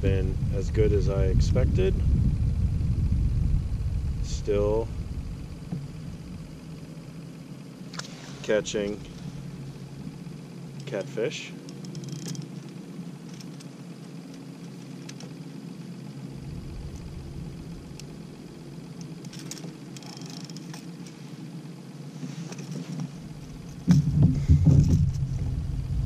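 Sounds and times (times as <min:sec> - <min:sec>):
wind buffeting microphone: 0:00.0 - 0:06.6, 0:16.3 - 0:18.7, 0:23.5 - 0:26.0
low hum of kayak drive: 0:00.0 - 0:26.0.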